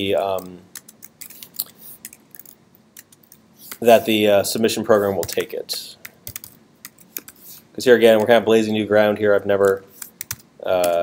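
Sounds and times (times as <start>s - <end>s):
computer keyboard typing: 0.3s - 3.9s, 5.0s - 7.4s, 9.5s - 11.0s.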